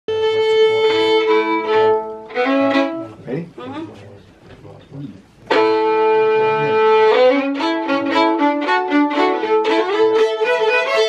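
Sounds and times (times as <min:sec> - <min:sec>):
fiddles bowing long notes: 0:00.1 - 0:03.2, 0:05.5 - 0:11.0.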